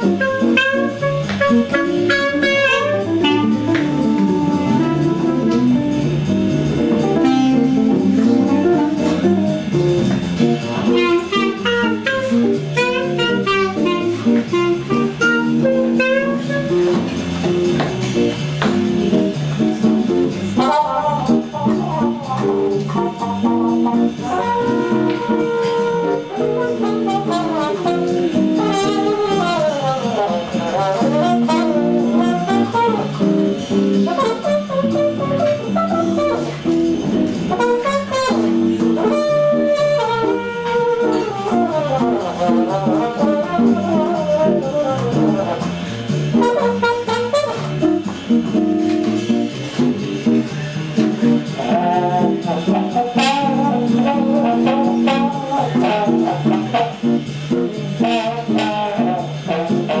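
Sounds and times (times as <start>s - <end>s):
trumpet playing jazz melody: 0.0s - 60.0s.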